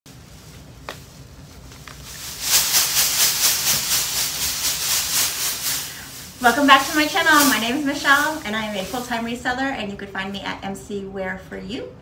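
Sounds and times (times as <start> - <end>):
shredded paper rustling: 0.1 - 9.8.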